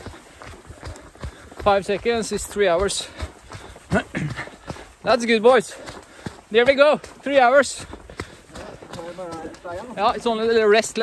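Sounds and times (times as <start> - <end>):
running footsteps on trail: 0.0 - 11.0.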